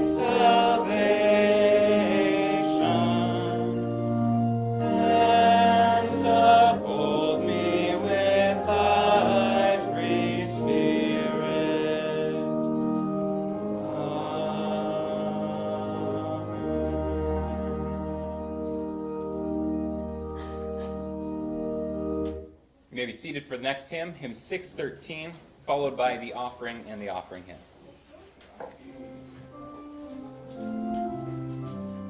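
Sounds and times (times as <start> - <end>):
congregation singing a hymn: 0.0 - 22.4
organ accompaniment: 0.0 - 22.6, 29.0 - 32.0.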